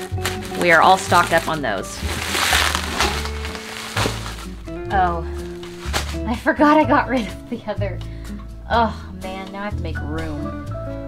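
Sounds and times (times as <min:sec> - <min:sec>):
bubble wrap crinkling: 0:00.0 - 0:06.4
background music: 0:00.0 - 0:11.0.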